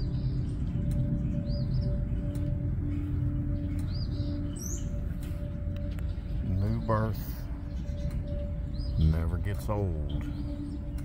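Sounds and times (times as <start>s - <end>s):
birds chirping: 0.0s - 11.0s
low outdoor background: 0.0s - 11.0s.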